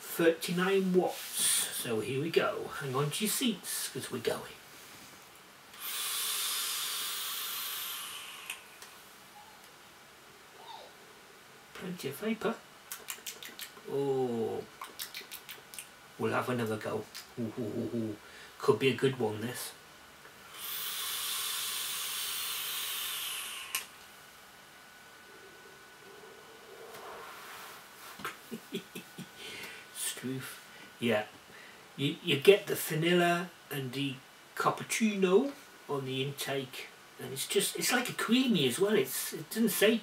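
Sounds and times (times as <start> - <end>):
hiss of vapour from e-cigarette: 5.8 - 8.6, 20.5 - 23.9
vape coil sizzling: 5.8 - 8.6, 20.5 - 23.9
vape click: 23.0 - 23.9.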